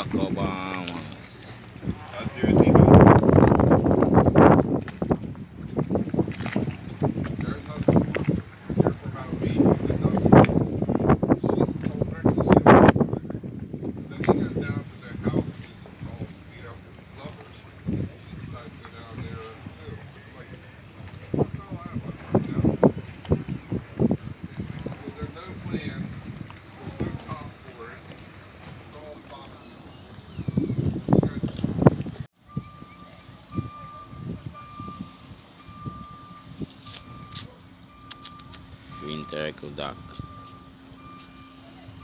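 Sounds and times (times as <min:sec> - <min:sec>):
wind on microphone: 0:00.0 - 0:28.8, 0:29.4 - 0:39.3
boat motor running: 0:00.0 - 0:42.0
reversing alarm beeping: 0:32.5 - 0:42.0.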